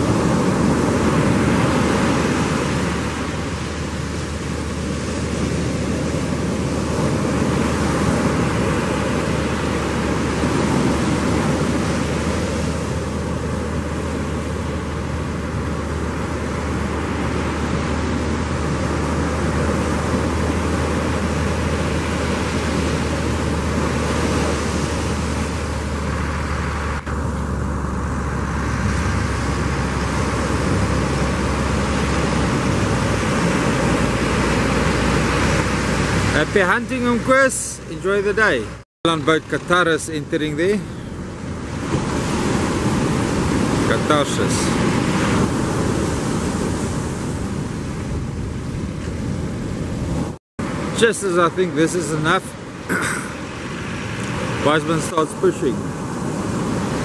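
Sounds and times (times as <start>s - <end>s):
low engine hum: 0.0s - 57.0s
surf breaking on beach: 0.0s - 57.0s.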